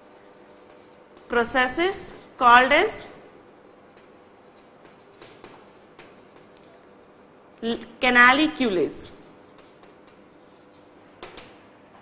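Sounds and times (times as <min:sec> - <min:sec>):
chalk scratching on blackboard: 0:00.0 - 0:11.6.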